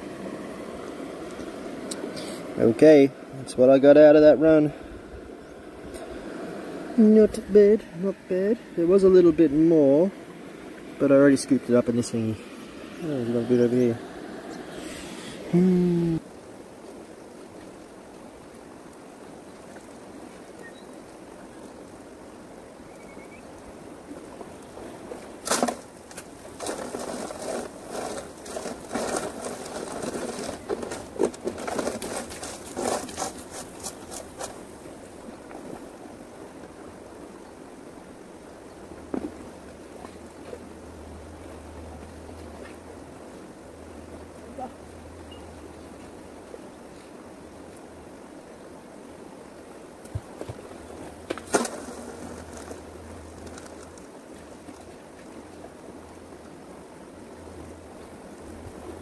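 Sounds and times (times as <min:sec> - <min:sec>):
flowing water rushing: 0:00.0 - 0:59.0
gear and gravel scraping and rattling: 0:25.3 - 0:34.8, 0:50.9 - 0:55.0.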